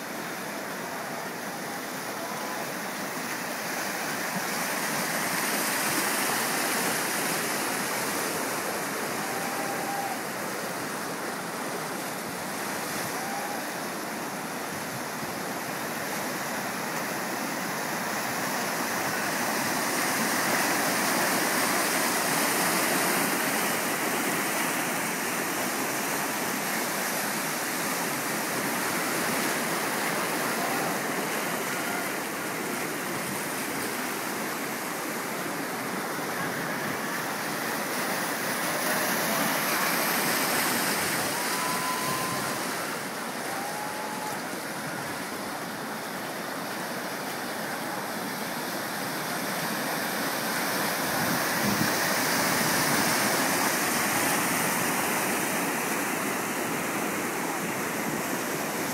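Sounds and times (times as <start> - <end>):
white water rushing: 0.0 - 58.9.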